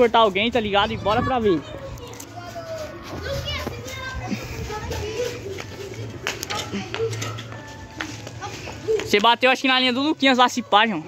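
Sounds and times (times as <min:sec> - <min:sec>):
distant children's voices: 0:00.9 - 0:09.2.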